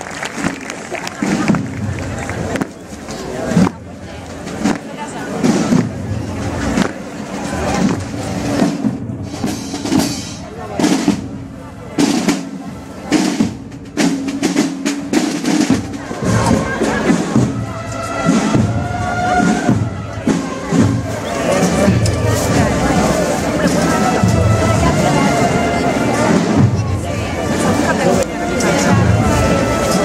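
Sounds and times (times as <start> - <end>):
marching snare and bass drums: 0.0 - 30.0
wind instruments holding notes: 0.0 - 30.0.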